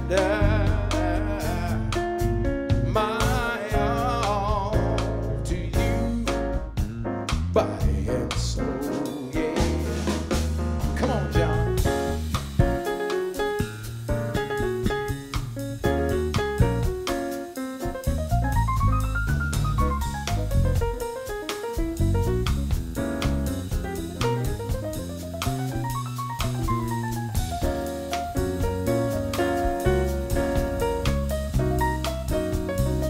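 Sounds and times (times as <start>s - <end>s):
bass: 0.0s - 33.0s
drum kit keeping time: 0.0s - 33.0s
jazz piano solo: 0.0s - 33.0s.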